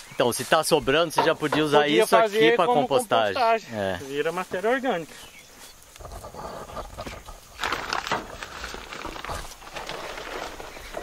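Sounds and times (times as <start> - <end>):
shovel scraping and thudding: 6.1 - 11.0.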